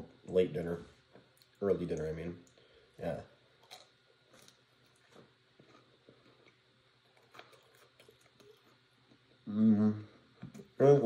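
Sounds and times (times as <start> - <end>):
chewing crunchy food: 3.6 - 9.4.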